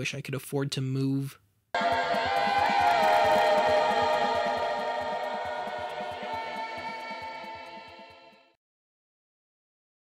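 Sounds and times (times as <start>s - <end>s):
droning electronic tones: 1.8s - 8.5s
low pulsing: 1.8s - 8.5s.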